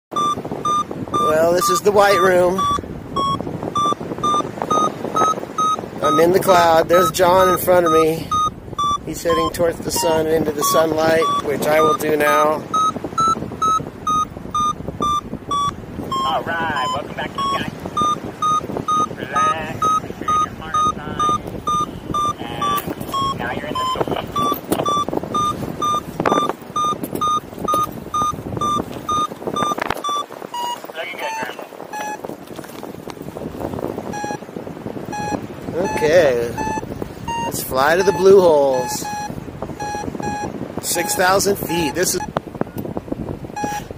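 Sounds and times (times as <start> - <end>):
variometer short high beeps: 0.1 - 32.2, 34.1 - 34.4, 35.1 - 42.4, 43.5 - 43.9
wind noise rushing: 0.1 - 43.9.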